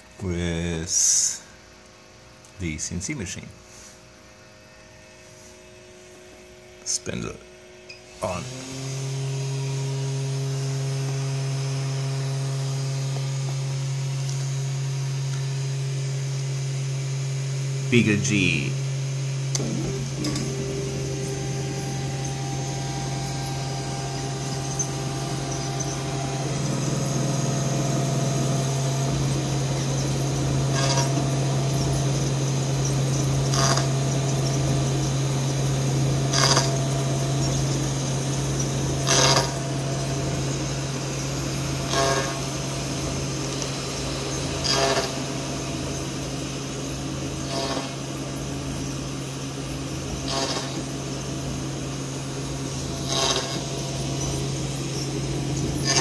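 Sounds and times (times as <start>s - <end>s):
cnc spindle humming: 0.0s - 56.0s
end mill cutting plywood: 8.2s - 14.6s, 19.5s - 45.2s, 52.6s - 56.0s.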